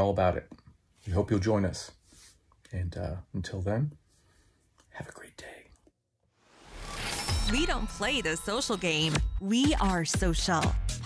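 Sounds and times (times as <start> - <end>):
man whispering: 4.9 - 5.9.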